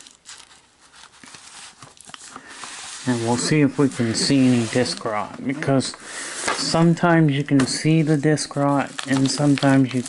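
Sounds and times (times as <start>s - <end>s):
cardboard and paper rustling: 0.0s - 10.0s.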